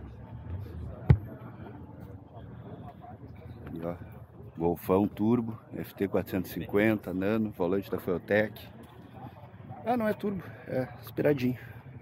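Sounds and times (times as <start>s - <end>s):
faint crowd chatter: 0.0s - 12.0s
sharp thump: 1.0s - 1.3s.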